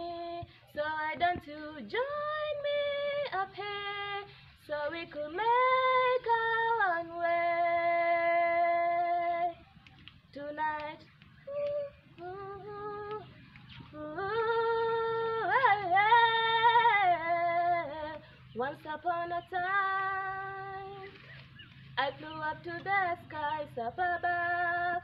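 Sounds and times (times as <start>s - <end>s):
girl singing unaccompanied: 0.0s - 9.7s, 10.3s - 21.2s, 21.9s - 25.0s.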